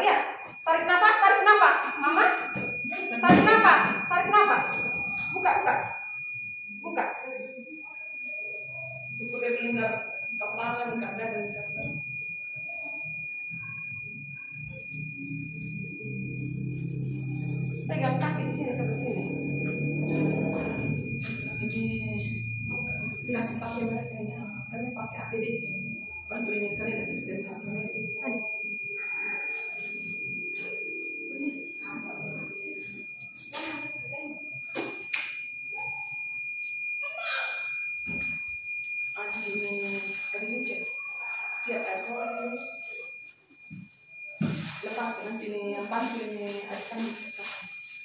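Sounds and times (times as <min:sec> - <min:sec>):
indistinct voices: 0:00.0 - 0:38.4, 0:39.1 - 0:43.2
high-pitched electronic tone: 0:00.0 - 0:48.0.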